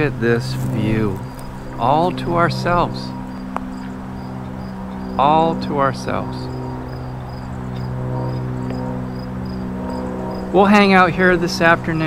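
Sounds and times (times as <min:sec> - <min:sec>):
insects chirping: 0:00.0 - 0:12.0
low mechanical hum: 0:00.0 - 0:12.0.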